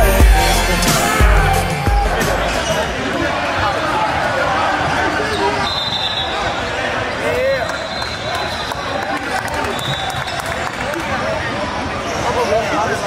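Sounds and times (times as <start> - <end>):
players and spectators voices: 0.0 - 13.0.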